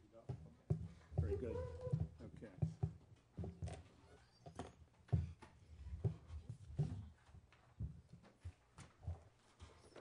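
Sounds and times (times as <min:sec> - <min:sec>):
footsteps on wooden platform: 0:00.2 - 0:10.0.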